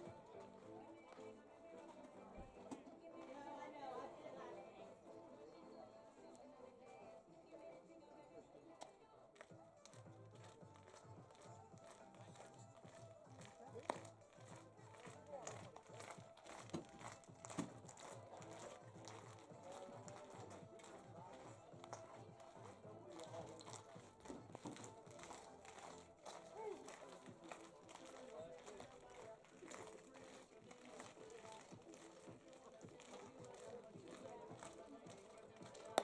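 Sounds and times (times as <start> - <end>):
faint distant voices: 0.0 - 36.0.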